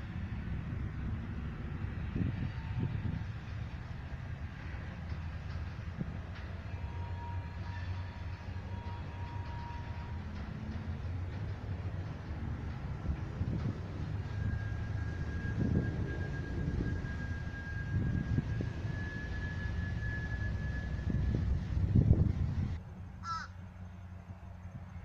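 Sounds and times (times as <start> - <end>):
faint high whistle-like tone: 6.4 - 10.2, 14.1 - 22.1
crow cawing: 23.2 - 23.6.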